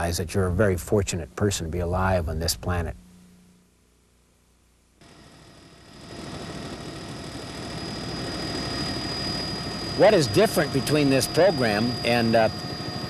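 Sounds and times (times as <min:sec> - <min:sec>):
thin steady whine: 0:00.0 - 0:13.0
aircraft engine drone in cabin: 0:05.0 - 0:13.0.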